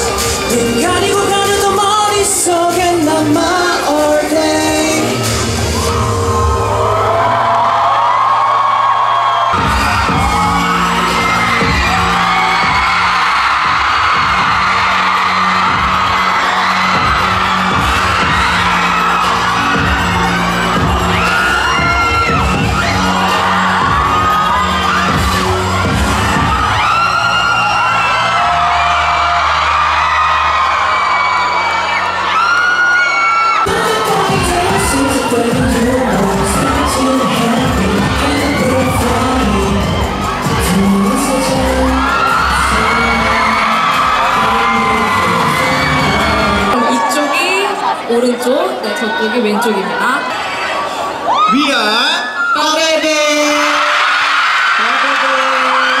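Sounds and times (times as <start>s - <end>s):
person singing: 0.0s - 7.4s, 33.7s - 46.9s
live pop music with heavy beat: 0.0s - 49.9s, 52.9s - 56.0s
crowd screaming: 0.0s - 56.0s.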